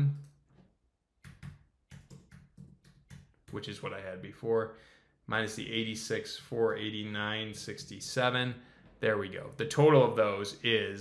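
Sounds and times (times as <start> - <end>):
computer keyboard keystrokes: 1.2 - 3.6.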